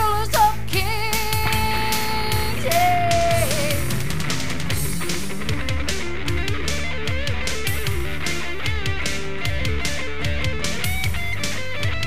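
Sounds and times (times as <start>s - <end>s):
blues-rock band music: 0.0s - 12.0s
electric guitar long notes: 0.0s - 12.0s.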